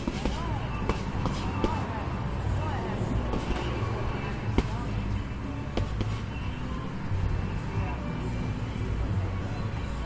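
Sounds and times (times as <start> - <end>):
punches smacking heavy bag: 0.0 - 1.9, 3.3 - 3.8, 4.5 - 4.9, 5.7 - 6.3
background music: 0.0 - 10.0.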